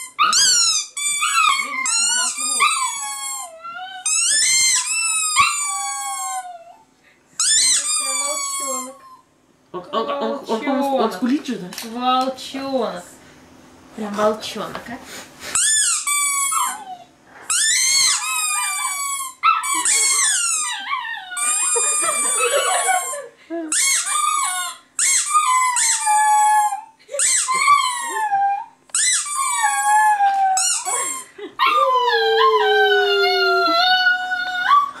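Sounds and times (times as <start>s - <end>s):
puppy howling: 0.0s - 6.9s, 16.0s - 23.2s, 24.0s - 35.0s.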